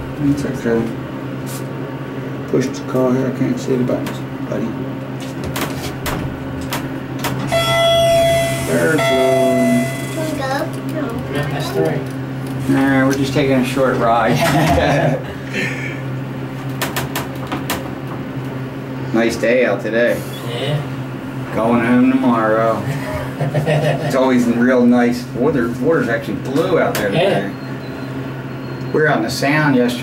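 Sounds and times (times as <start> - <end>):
elevator hum: 0.0 - 30.0.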